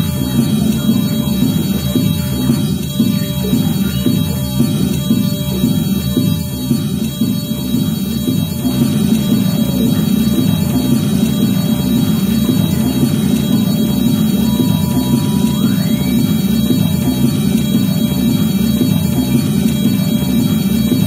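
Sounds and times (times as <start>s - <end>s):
low synthesizer drone: 0.0s - 21.0s.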